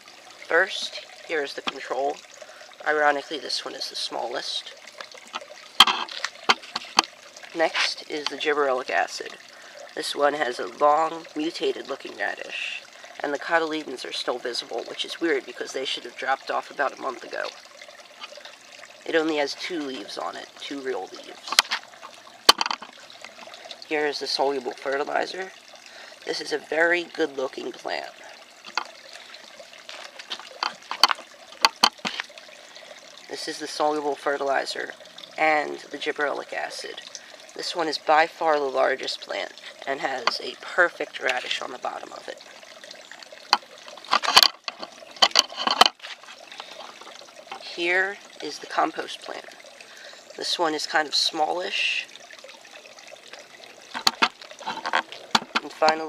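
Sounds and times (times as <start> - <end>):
plastic pots clicking on concrete: 21.4 - 23.6, 29.8 - 32.4, 43.5 - 47.6, 53.9 - 56.0.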